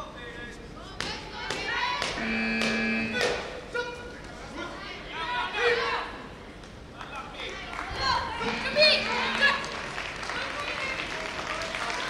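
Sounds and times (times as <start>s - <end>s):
voices shouting in echoing hall: 1.3s - 6.5s, 7.2s - 12.0s
steady held tone: 2.2s - 3.5s, 8.4s - 9.9s.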